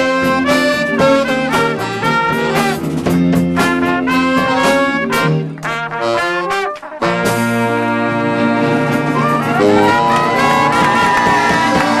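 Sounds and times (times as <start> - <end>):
jazz band playing: 0.0 - 12.0
trumpet notes: 0.0 - 12.0.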